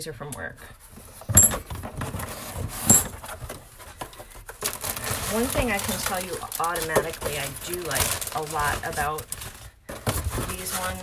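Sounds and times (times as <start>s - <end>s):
cardboard and plastic rustling: 0.8s - 11.0s.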